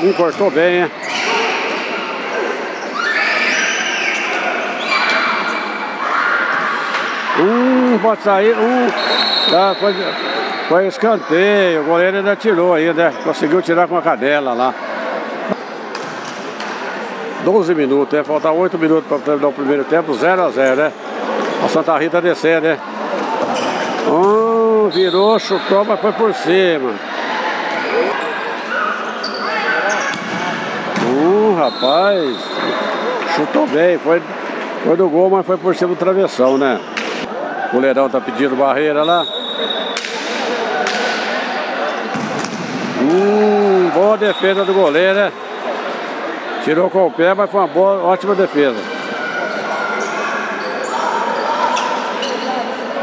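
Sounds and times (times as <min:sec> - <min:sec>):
overlapping voices in echoing hall: 0:00.7 - 0:12.6, 0:14.6 - 0:17.4, 0:25.7 - 0:33.4, 0:39.3 - 0:53.0
players shouting: 0:01.0 - 0:11.9, 0:42.8 - 0:45.0.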